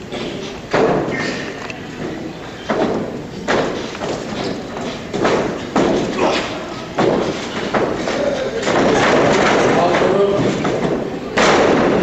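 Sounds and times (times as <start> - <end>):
bodies thumping on ring mat: 2.0 - 9.8.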